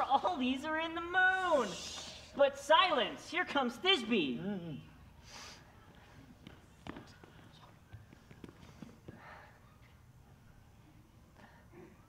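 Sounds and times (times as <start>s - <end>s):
soft breathy sound: 8.5s - 10.0s, 11.2s - 12.0s.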